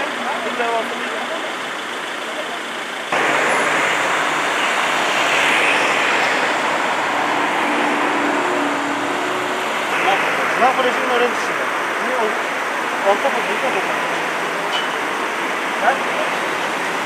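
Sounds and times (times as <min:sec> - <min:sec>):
passing vehicles: 0:00.0 - 0:17.0.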